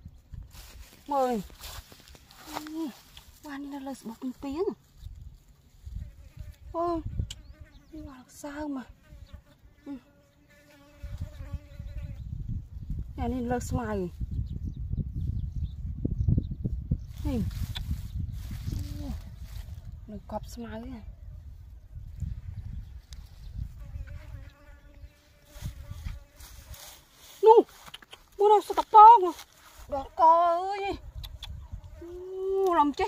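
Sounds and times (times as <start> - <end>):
gloved hands rustling grass: 0.4 - 6.0, 17.1 - 20.1, 25.4 - 30.8
flying insect buzzing: 5.8 - 13.7, 22.0 - 33.0.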